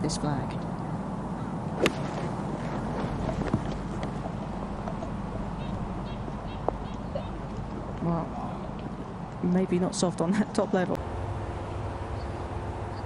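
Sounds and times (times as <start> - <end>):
outdoor background noise: 0.0 - 13.0
golf club striking ball: 1.8 - 4.2.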